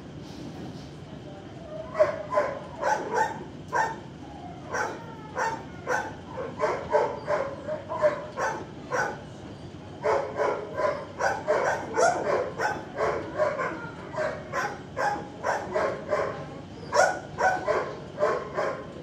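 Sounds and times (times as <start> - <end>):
dogs barking: 1.9 - 9.4, 10.0 - 19.0.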